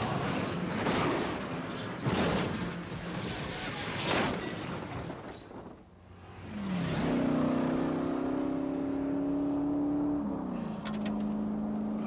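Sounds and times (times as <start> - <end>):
car engine accelerating: 6.4 - 12.0.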